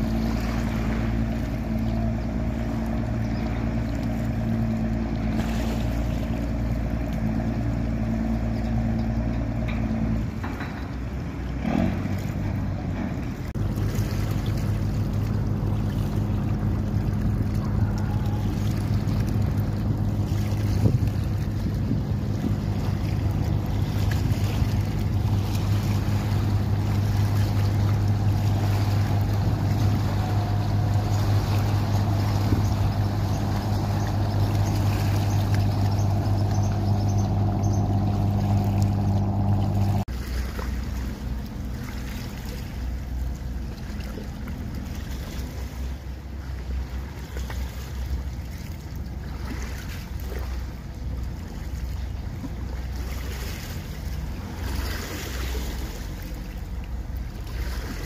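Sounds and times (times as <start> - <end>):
boat engines droning: 0.0 - 58.0
rush of water: 0.0 - 58.0.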